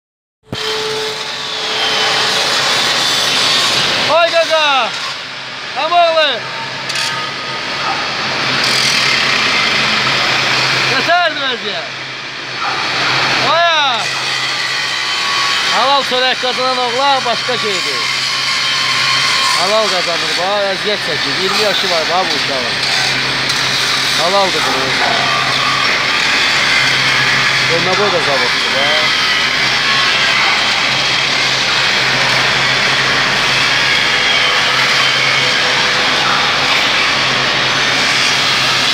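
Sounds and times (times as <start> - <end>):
angle grinder grinding steel: 8.4 - 11.0, 13.3 - 38.9.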